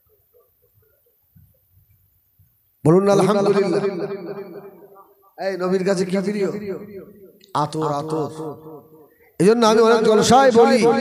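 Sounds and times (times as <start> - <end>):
man preaching into microphone: 2.8 - 11.0.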